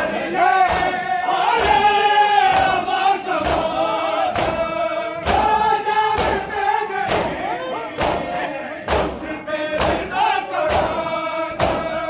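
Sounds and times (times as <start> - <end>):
men chanting in unison: 0.0 - 12.0
hands slapping bare chests: 0.6 - 1.0, 3.4 - 12.0.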